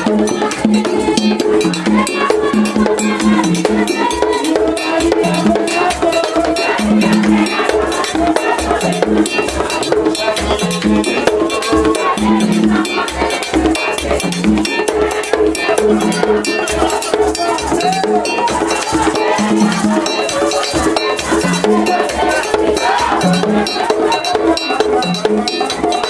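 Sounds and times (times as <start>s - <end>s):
fast drums and percussion: 0.0s - 26.0s.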